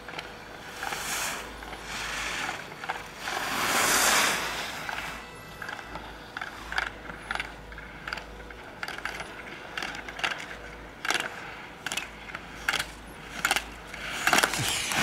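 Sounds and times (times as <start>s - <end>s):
skis hissing over snow: 0.6s - 2.6s, 3.2s - 5.2s.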